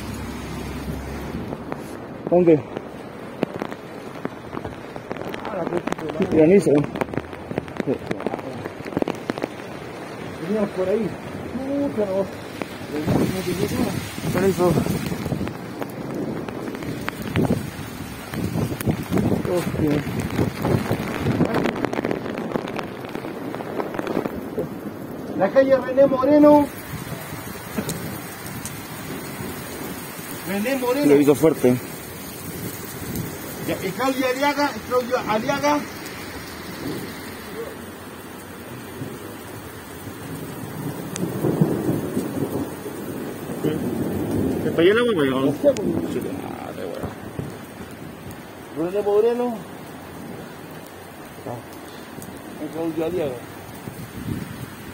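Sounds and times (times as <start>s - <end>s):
rain falling: 0.0s - 54.9s
thunder rolling: 0.0s - 54.9s.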